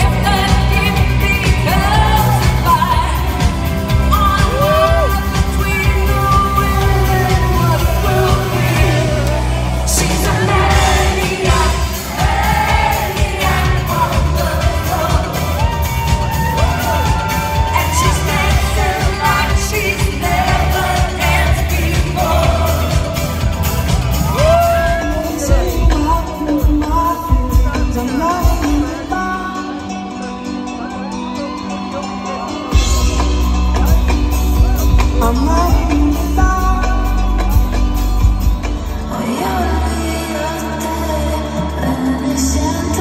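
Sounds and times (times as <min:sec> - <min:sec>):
person singing into microphone: 0:00.0 - 0:23.6, 0:24.3 - 0:30.8, 0:34.6 - 0:43.0
disco-pop band playing: 0:00.0 - 0:43.0.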